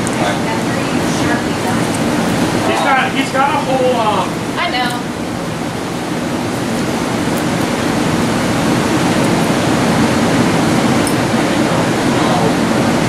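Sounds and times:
steady rushing noise: 0.0 - 13.0.

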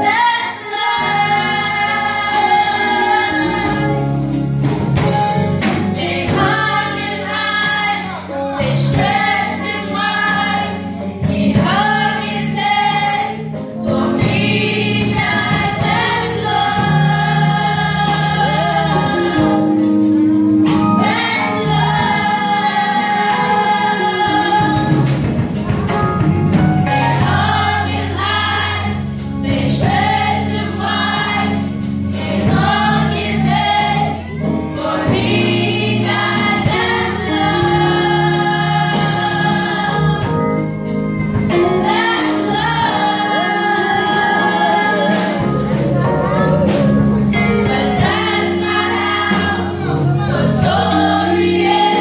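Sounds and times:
youth choir singing gospel: 0.0 - 52.0.

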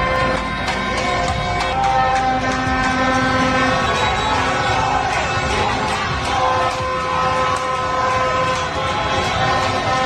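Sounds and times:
crowd noise: 0.0 - 10.0
horns blaring: 0.0 - 10.0
motorbike engines: 0.0 - 10.0.

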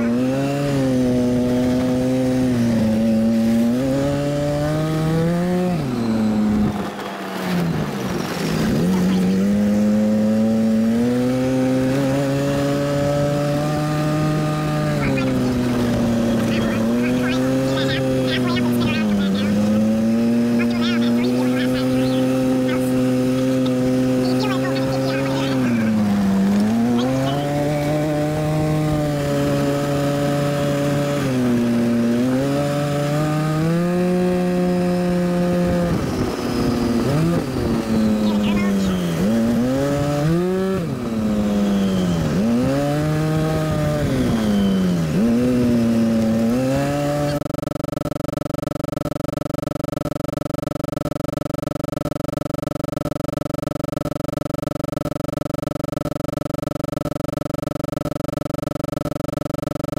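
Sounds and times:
vehicle engine revving: 0.0 - 59.9.

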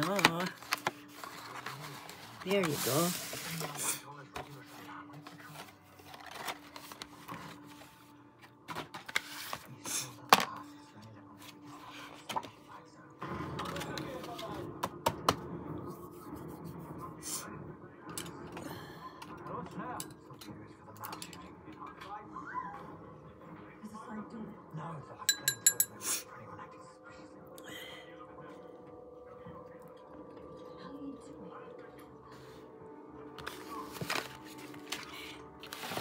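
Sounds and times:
cardboard box rustling and scraping: 0.0 - 3.9, 5.6 - 7.6, 35.6 - 36.0.

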